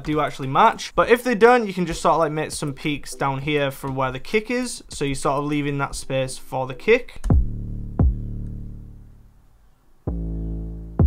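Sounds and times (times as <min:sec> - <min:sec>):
kick drum hit: 0:07.3 - 0:08.2
eight-oh-eight bass notes: 0:07.3 - 0:09.3, 0:10.1 - 0:11.0.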